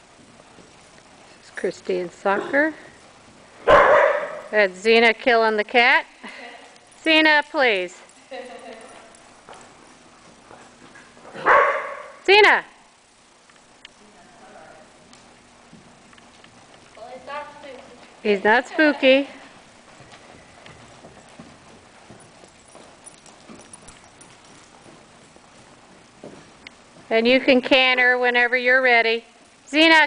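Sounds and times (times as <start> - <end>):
horse hoofbeats on dirt: 0.0 - 6.0, 6.6 - 12.1, 15.4 - 30.0.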